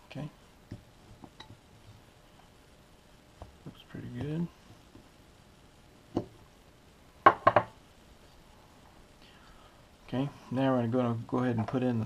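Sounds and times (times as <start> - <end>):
knife knocking on wooden table: 7.3 - 7.7.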